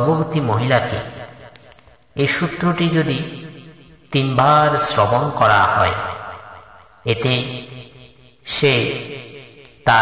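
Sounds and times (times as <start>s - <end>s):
man chanting: 0.0s - 1.4s, 2.2s - 10.0s.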